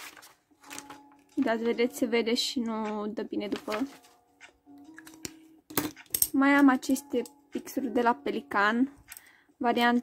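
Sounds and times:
notebook paper rustling: 0.0s - 1.8s, 3.4s - 4.2s
faint background music: 0.0s - 10.0s.

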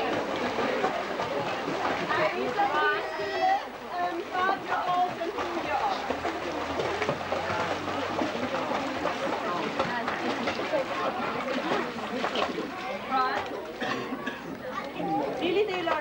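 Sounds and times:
crowd chatter and calls: 0.0s - 16.0s
splashing in pool: 0.0s - 16.0s.

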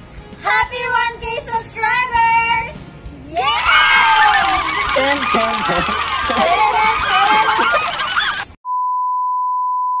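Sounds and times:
voices: 3.3s - 8.5s
laughter: 4.2s - 8.5s.

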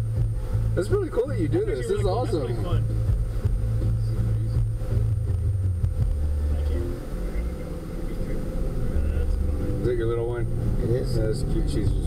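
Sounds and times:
road noise: 0.0s - 12.0s
van engine rumble: 0.0s - 12.0s.

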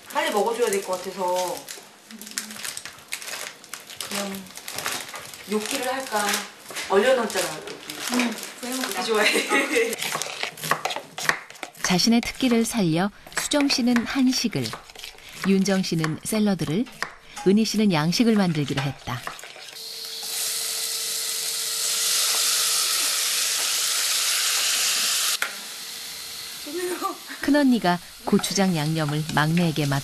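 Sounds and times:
tomatoes sizzling in a hot pot: 8.1s - 30.0s
women's voices: 11.9s - 14.8s, 15.4s - 19.3s, 26.7s - 30.0s.

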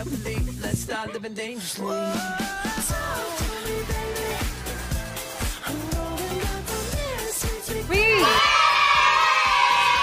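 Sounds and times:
background music: 0.0s - 10.0s
children cheering: 8.1s - 10.0s.

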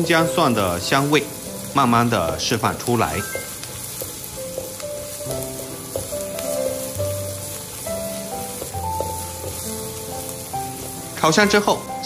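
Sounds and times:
aromatics sizzling in oil: 0.0s - 12.0s
spatula scraping a wok: 3.2s - 11.8s.

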